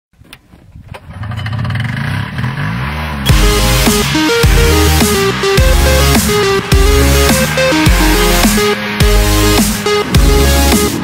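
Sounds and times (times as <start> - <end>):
snowmobile engine revving: 1.2 - 11.0
electronic dance music: 3.3 - 11.0.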